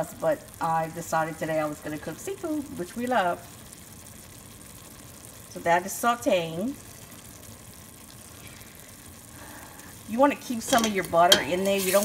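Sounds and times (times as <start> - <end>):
vegetables sizzling in butter: 0.0 - 12.0.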